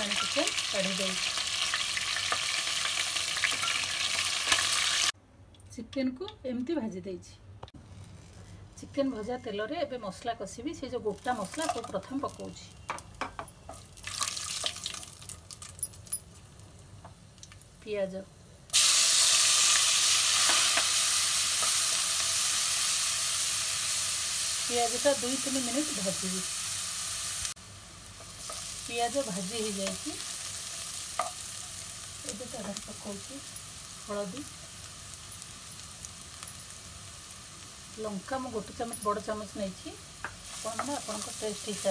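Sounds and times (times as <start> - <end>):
spices sizzling in hot oil: 0.0 - 5.2, 9.1 - 41.9
crackles and pops: 17.3 - 17.7.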